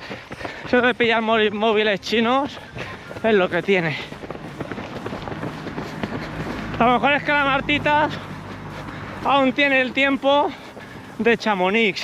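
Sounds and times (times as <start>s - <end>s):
running footsteps: 0.0s - 12.0s.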